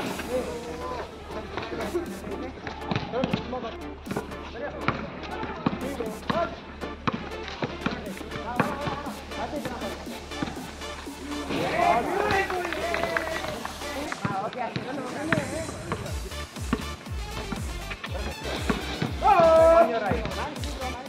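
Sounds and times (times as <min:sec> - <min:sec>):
background music with bass beat: 0:00.0 - 0:21.0
players calling out: 0:00.0 - 0:21.0.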